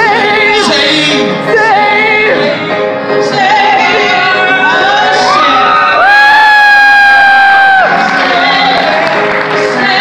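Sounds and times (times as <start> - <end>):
audience cheering: 5.2 - 9.7.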